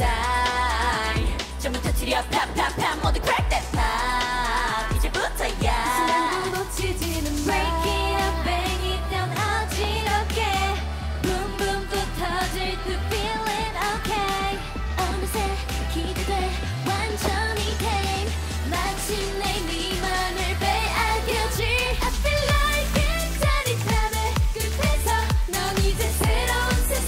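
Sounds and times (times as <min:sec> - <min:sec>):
dance track sung by female group: 0:00.0 - 0:27.0
heavy bass line: 0:00.0 - 0:27.0.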